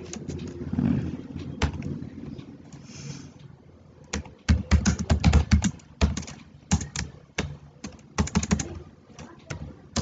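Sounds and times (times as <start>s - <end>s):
typing on computer keyboard: 4.0s - 10.0s.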